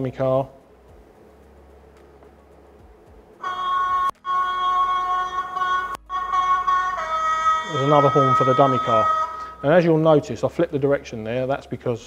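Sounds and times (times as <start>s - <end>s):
model train horn: 3.4s - 9.8s.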